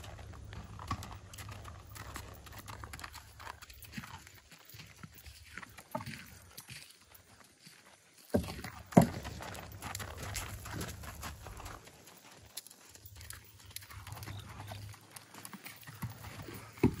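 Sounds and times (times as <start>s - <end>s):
hoof footfalls on gravel: 0.0s - 17.0s
hoof knocking on wood: 8.4s - 10.2s, 16.8s - 17.0s.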